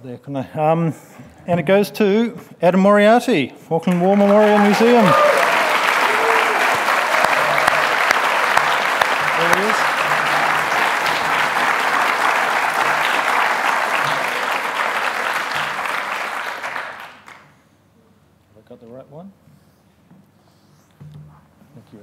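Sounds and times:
audience applauding: 0:03.9 - 0:17.5
people shouting: 0:04.6 - 0:08.4.

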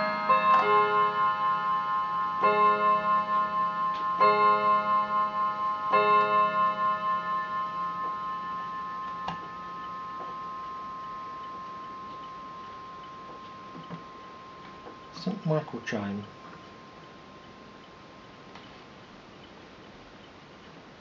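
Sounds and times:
mantel clock chime striking: 0:00.0 - 0:18.4.

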